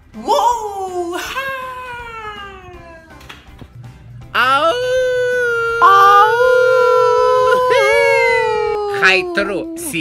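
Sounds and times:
man howling high note: 0:04.2 - 0:10.0.

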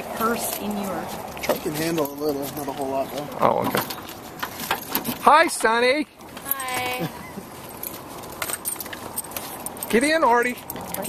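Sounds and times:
small metal pieces jingling: 0:06.4 - 0:11.0.

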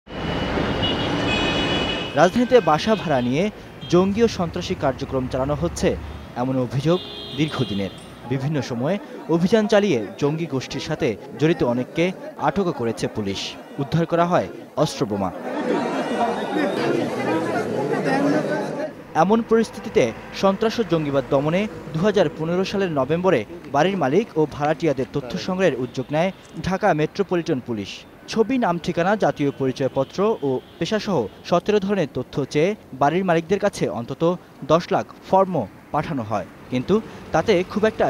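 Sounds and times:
city road traffic: 0:00.1 - 0:38.0
crowd chatter: 0:07.7 - 0:19.4.

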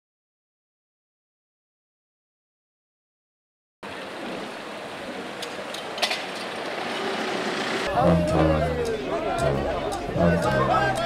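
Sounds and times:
street ambience: 0:03.8 - 0:11.0.

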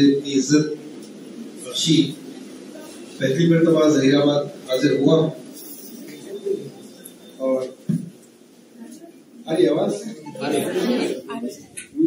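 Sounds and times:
man speaking: 0:03.2 - 0:05.5, 0:07.4 - 0:07.8, 0:09.4 - 0:11.4.

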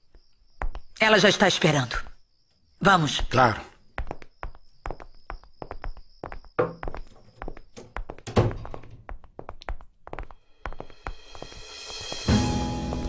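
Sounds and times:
footsteps on hard floor: 0:04.0 - 0:13.0.

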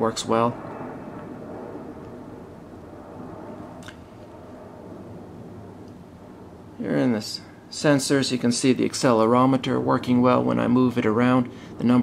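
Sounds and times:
room hum and hiss: 0:00.0 - 0:12.0.

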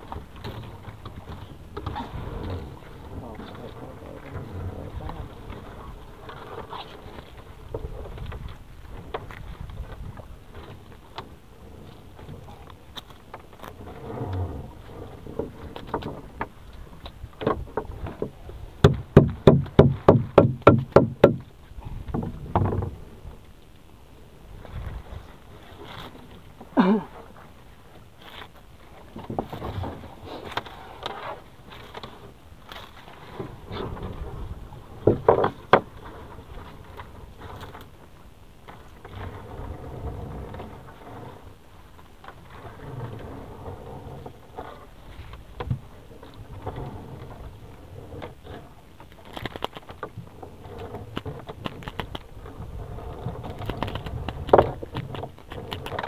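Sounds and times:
net rustling and scraping on hull: 0:00.0 - 0:23.4, 0:24.5 - 0:56.0
knocks on boat hull: 0:18.2 - 0:21.5.

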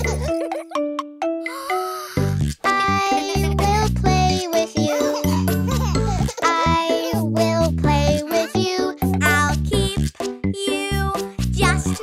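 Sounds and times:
children's song backing music: 0:01.7 - 0:12.0.

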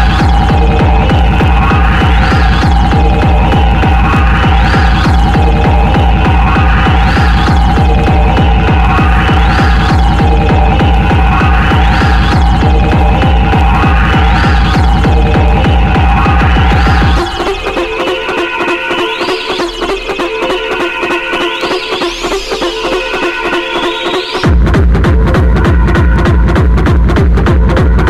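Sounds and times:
drum and bass music: 0:00.0 - 0:28.0.

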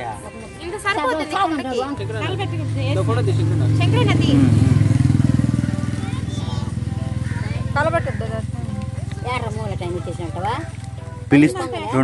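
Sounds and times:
engine running: 0:02.0 - 0:11.5.

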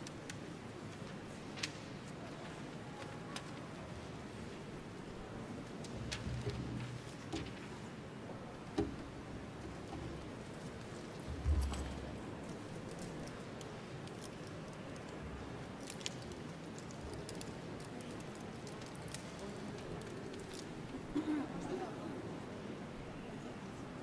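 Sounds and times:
church congregation ambience: 0:00.0 - 0:24.0
faint voices and movement: 0:00.0 - 0:24.0.

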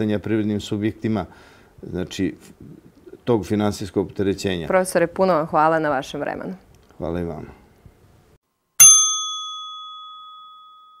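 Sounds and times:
bell-like chime ding: 0:08.8 - 0:11.0.

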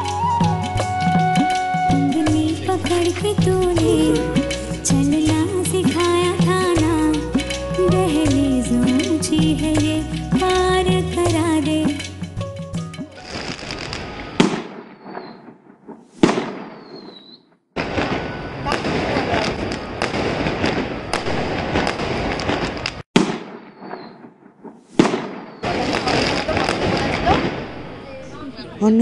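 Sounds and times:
falling whistle: 0:00.0 - 0:03.2
dense firework crackling: 0:13.2 - 0:17.2, 0:17.8 - 0:28.6
firework bangs: 0:13.2 - 0:28.2.

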